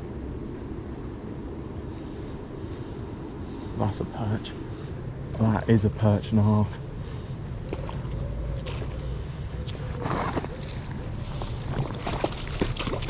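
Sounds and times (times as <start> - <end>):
steady low rumble: 0.0 - 13.0
fish splashing in water: 11.3 - 13.0.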